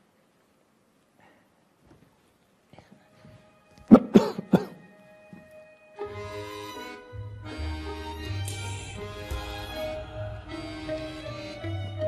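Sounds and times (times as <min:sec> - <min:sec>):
man coughing: 0:03.9 - 0:04.8.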